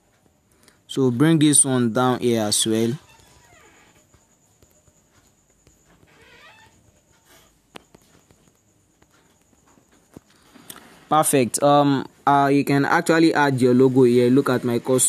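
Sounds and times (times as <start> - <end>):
steady high hiss: 0.1 - 15.0.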